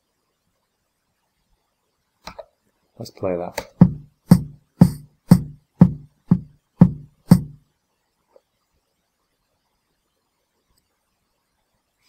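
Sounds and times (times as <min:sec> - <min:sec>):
programmed drum pattern: 0:03.6 - 0:07.6
faint click: 0:10.7 - 0:10.9.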